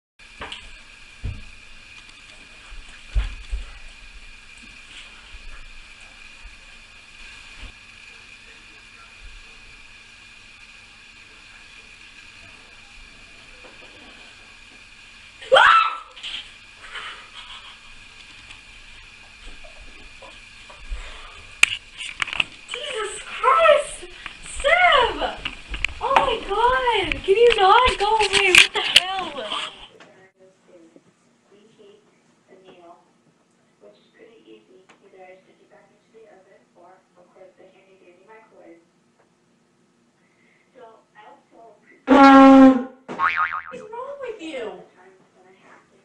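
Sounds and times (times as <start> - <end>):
room hiss: 0.2 - 43.1.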